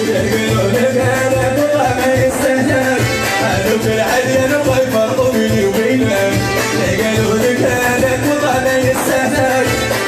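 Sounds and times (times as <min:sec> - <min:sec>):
man singing: 0:00.0 - 0:10.0
programmed drum beat: 0:00.0 - 0:10.0.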